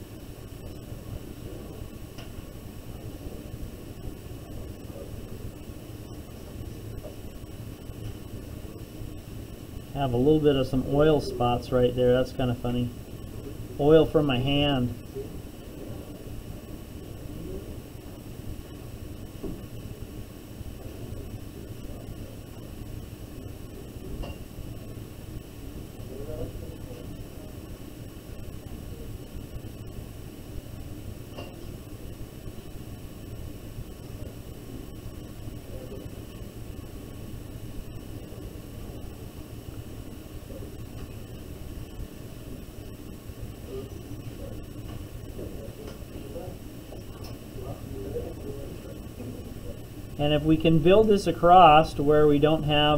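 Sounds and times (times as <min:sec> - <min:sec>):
room noise hum and hiss: 0:00.0 - 0:52.9.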